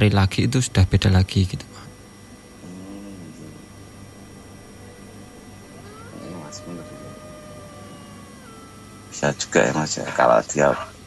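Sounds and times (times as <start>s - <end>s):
eerie background sound bed: 1.6s - 11.0s
drawn-out gliding tone: 4.1s - 9.2s.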